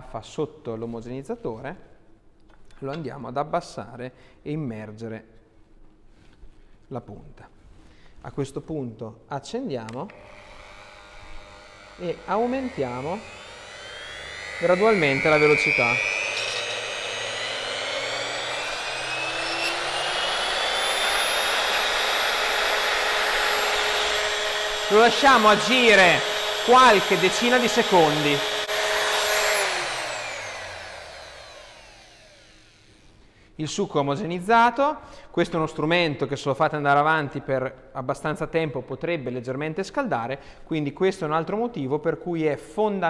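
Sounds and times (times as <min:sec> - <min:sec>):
homogenizer motor whining: 0:10.1 - 0:33.0.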